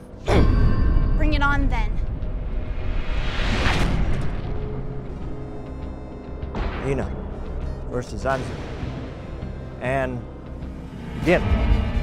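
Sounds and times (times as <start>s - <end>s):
dramatic soundtrack music: 0.0s - 12.0s
whoosh hit: 2.4s - 4.6s.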